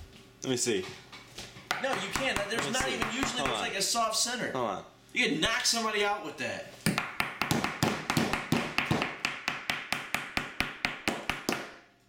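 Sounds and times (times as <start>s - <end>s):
knocks on stale bread: 6.9s - 11.7s.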